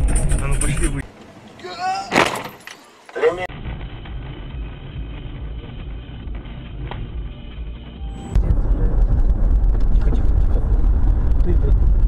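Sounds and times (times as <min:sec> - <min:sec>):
person crying out: 0:01.6 - 0:02.3.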